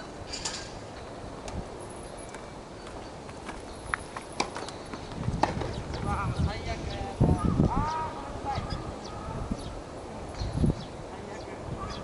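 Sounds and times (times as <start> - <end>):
voices: 5.6 - 12.0.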